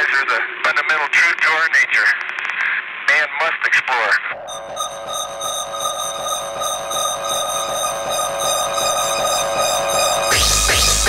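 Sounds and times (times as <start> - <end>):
shimmering synth chord: 4.4 - 11.0.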